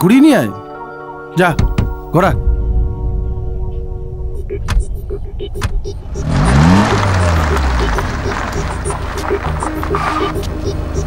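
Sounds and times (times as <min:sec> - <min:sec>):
car engine revving: 0:04.5 - 0:11.0
tyres churning dirt: 0:06.0 - 0:11.0.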